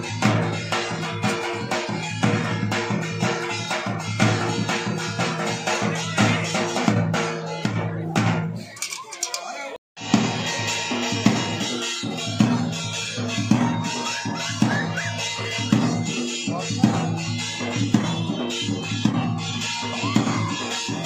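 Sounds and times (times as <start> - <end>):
steady drum beat: 0.0 - 9.4, 10.0 - 21.0.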